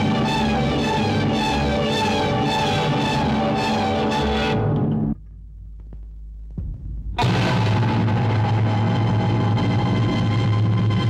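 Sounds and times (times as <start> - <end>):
soft thump: 6.6 - 7.2.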